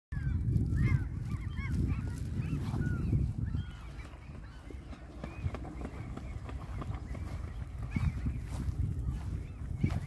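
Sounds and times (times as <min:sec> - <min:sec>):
wind rumbling on microphone: 0:00.1 - 0:10.0.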